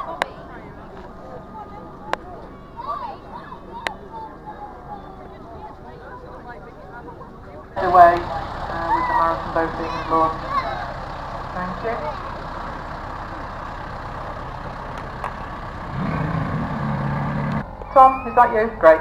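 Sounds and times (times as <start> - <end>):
people talking: 0.0 - 13.9, 17.9 - 19.0
tractor engine running: 7.8 - 19.0.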